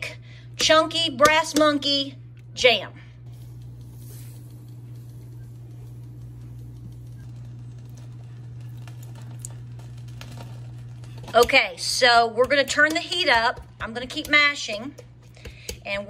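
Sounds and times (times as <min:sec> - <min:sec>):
steady low hum: 0:00.0 - 0:16.0
sugar pattering into pot: 0:03.3 - 0:11.5.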